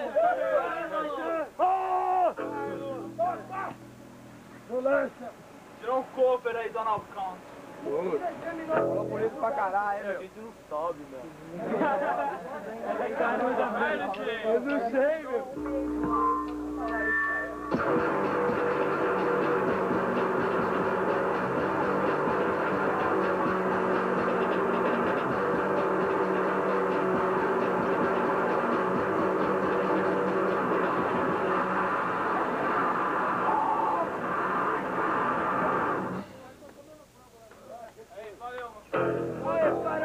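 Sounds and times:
distorted noise rock band: 15.6s - 36.4s.

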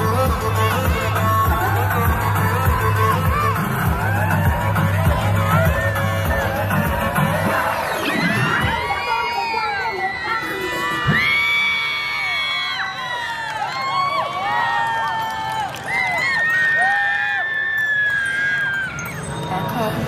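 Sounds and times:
dance music: 0.0s - 11.3s, 19.0s - 20.0s
children cheering and screaming: 0.8s - 19.9s.

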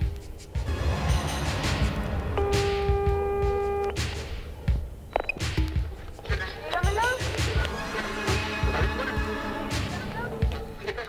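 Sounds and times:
low thudding beats: 0.0s - 10.8s.

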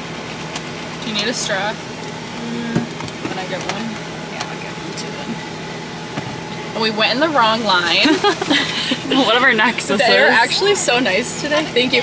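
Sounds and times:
idling car and air conditioning hum: 0.0s - 12.0s.

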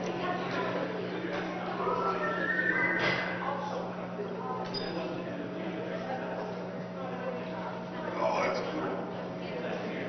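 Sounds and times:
murmur of voices: 0.0s - 10.0s
steady electrical hum: 0.0s - 10.0s
high whinny-like cry: 1.8s - 3.2s.

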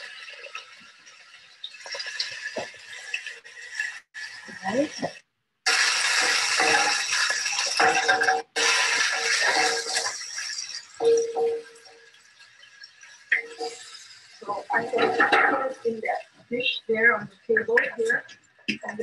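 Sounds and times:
vegetables sizzling in a hot pan: 0.0s - 19.0s.

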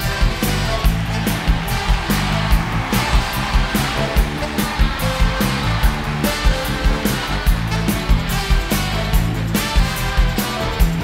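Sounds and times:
driving drum beat: 0.0s - 11.0s
live rock band playing: 0.0s - 11.0s
stadium crowd noise: 0.0s - 11.0s.

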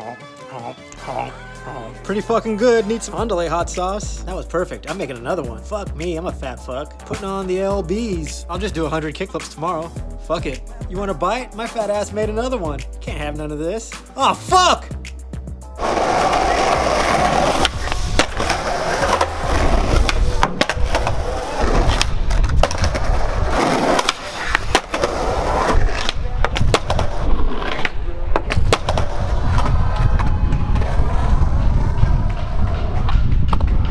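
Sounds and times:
skateboard wheels rolling on concrete: 15.4s - 33.9s
skateboard clacks and pops: 15.8s - 21.2s, 21.8s - 33.9s.

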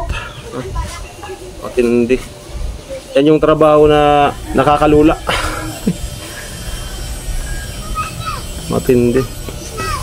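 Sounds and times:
man speaking: 3.2s - 5.3s.

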